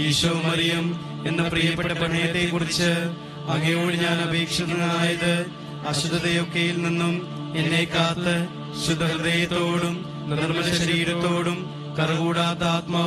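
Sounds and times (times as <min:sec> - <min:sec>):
person chanting a prayer: 0:00.0 - 0:13.0
steady drone accompaniment: 0:00.0 - 0:13.0.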